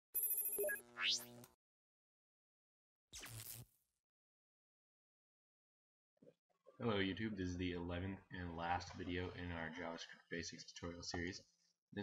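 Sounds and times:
high ringing tones with flutter: 0.2s - 0.8s.

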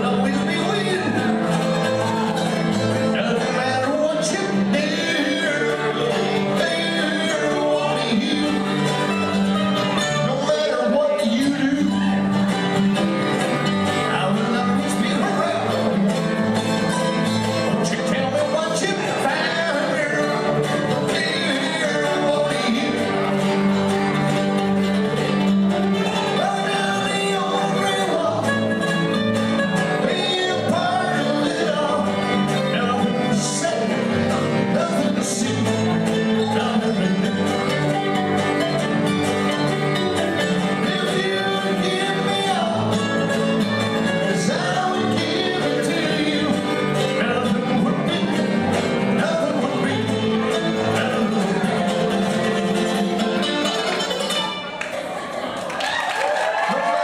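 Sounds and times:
man singing: 0.0s - 54.0s
upright bass: 0.0s - 54.7s
mandolins: 0.0s - 55.6s
acoustic guitar: 0.0s - 57.0s
country string band playing: 0.0s - 57.0s.

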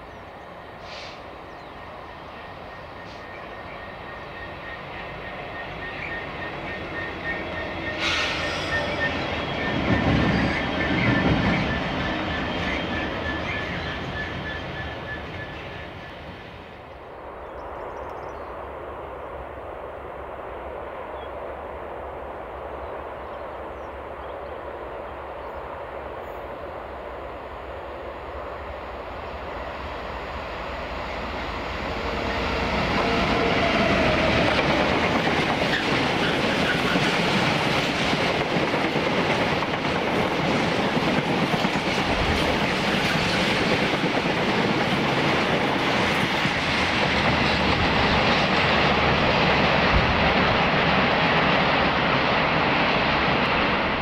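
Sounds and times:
diesel locomotive passing: 0.0s - 54.0s.

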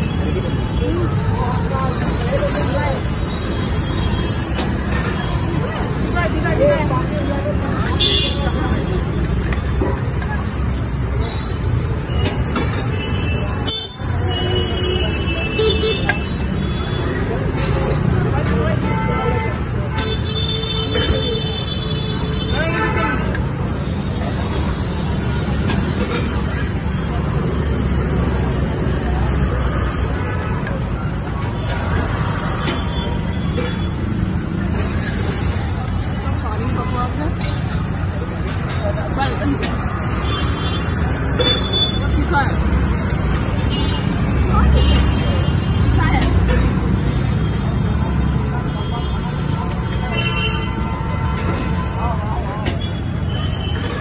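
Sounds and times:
people talking: 0.0s - 11.6s, 13.0s - 20.2s, 34.6s - 54.0s
rumble of passing vehicles: 0.0s - 54.0s
vehicle horns tooting: 48.6s - 52.0s.

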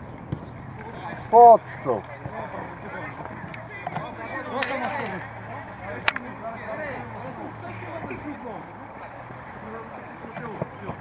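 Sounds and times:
people calling out and talking: 0.0s - 11.0s.

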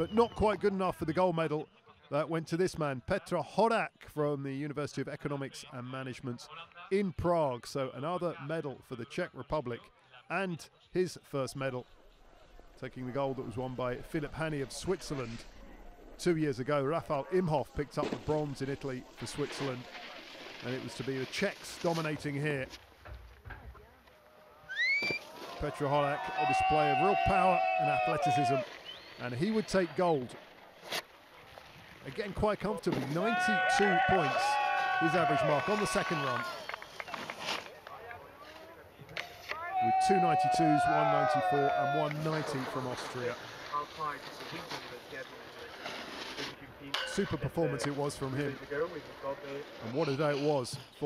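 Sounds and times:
snowboard sliding over snow: 17.8s - 22.8s, 40.1s - 46.9s
spectator whooping: 24.3s - 28.7s, 33.2s - 36.8s, 39.5s - 42.2s.

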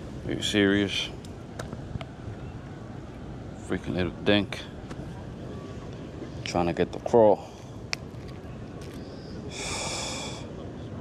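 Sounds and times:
man exhaling sharply: 9.5s - 10.5s.

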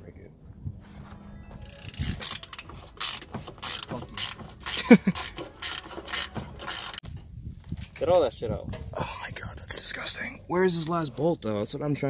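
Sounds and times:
ratchet wrench clicking: 1.7s - 7.0s.

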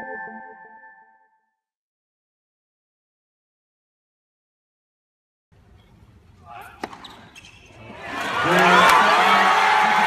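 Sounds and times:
crowd cheering: 7.9s - 10.0s.

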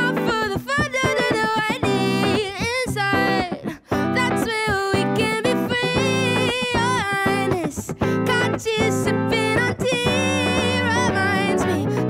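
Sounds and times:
electric guitar chords: 0.0s - 12.0s
woman singing: 0.0s - 12.0s.

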